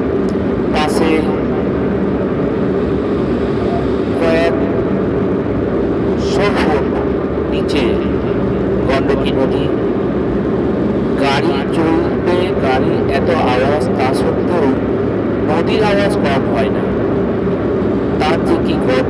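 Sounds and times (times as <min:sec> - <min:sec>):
vehicle engine and road noise: 0:00.0 - 0:19.0
voices: 0:00.7 - 0:01.6, 0:03.2 - 0:04.8, 0:06.1 - 0:09.8, 0:11.2 - 0:17.1, 0:18.2 - 0:19.0.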